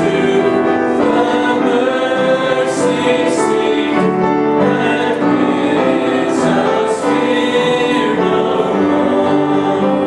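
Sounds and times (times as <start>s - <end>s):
congregation singing unaccompanied: 0.0s - 10.0s.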